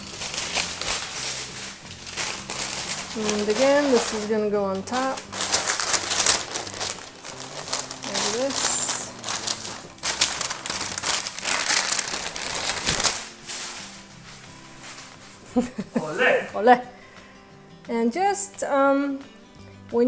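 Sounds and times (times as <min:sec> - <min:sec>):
baking paper rustling and crinkling: 0:00.0 - 0:16.1.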